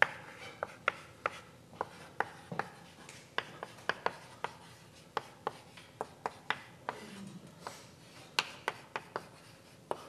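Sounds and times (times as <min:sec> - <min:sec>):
chalk tapping and scraping on blackboard: 0:00.0 - 0:07.0, 0:07.6 - 0:10.0.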